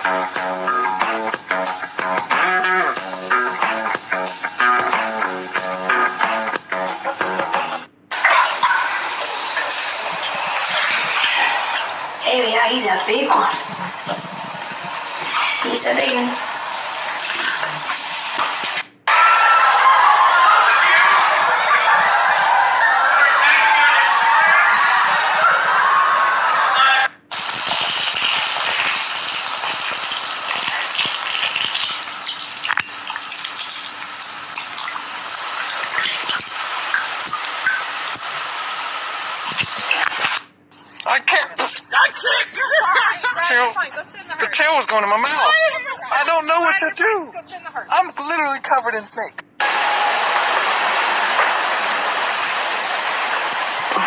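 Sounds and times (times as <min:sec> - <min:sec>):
water running into bathtub: 0:08.1 - 0:18.9, 0:27.3 - 0:40.4, 0:49.6 - 0:54.0
water dripping into toilet bowl: 0:29.3 - 0:38.3.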